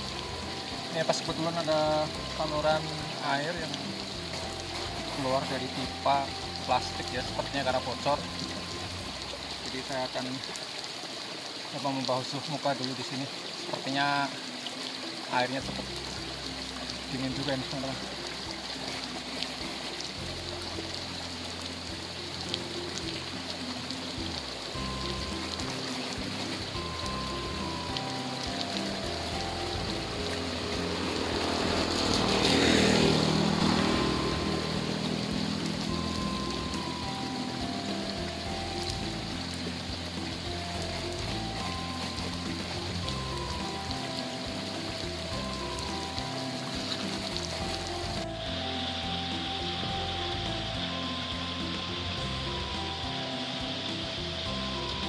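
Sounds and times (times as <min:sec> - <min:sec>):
slow background music: 0:00.0 - 0:55.0
water spraying from pipe: 0:00.0 - 0:55.0.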